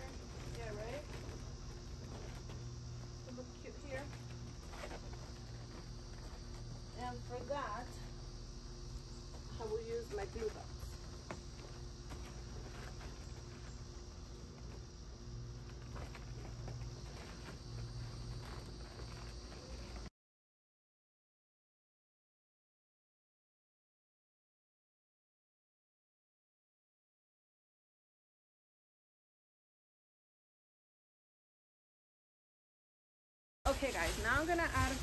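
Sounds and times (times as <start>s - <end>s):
insects chirring: 0.0s - 20.1s, 33.7s - 35.0s.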